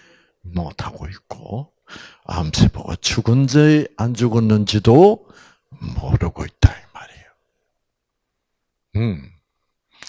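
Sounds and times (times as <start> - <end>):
man speaking breathily: 5.1 - 7.4
man humming mm: 8.9 - 9.5.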